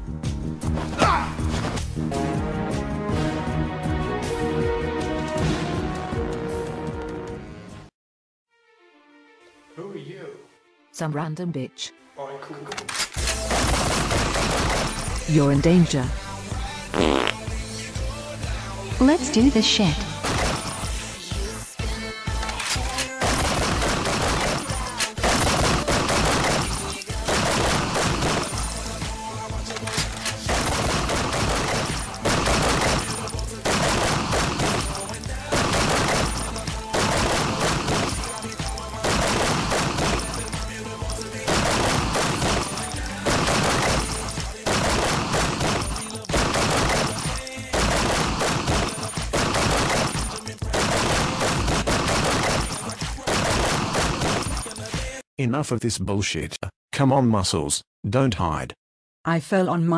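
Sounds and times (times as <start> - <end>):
music: 0.0 - 7.9, 8.5 - 55.2
automatic gunfire: 13.2 - 15.2, 20.2 - 21.0, 23.1 - 28.9, 29.9 - 55.1.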